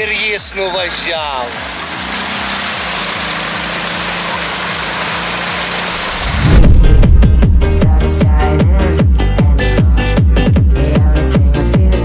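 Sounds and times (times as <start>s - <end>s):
atv engine running: 0.0s - 12.0s
water hissing: 1.6s - 7.0s
loud techno music: 6.1s - 12.0s.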